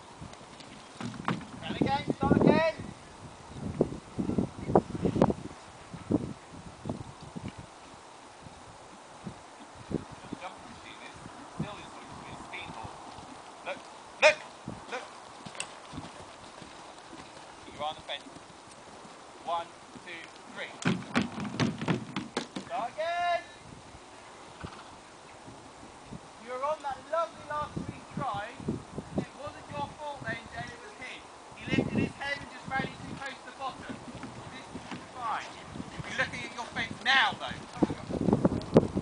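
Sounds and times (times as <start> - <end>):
horse hoofbeats on soft ground: 8.9 - 22.9, 32.3 - 39.0.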